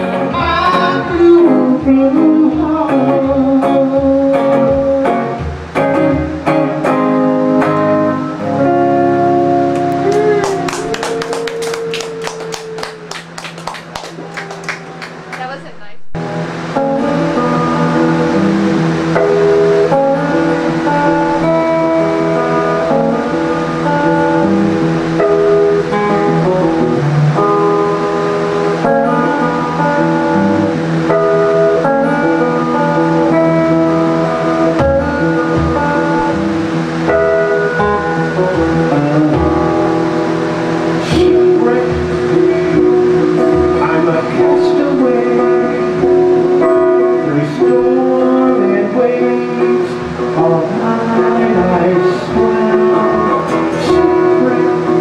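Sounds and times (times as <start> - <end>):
electric guitar playing: 0.0 - 55.0
bass line: 28.8 - 47.4.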